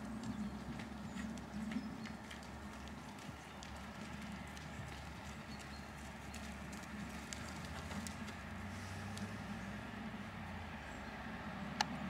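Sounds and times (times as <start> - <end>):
horse hoofbeats on sand: 0.0 - 9.4
low steady background noise: 0.0 - 12.0.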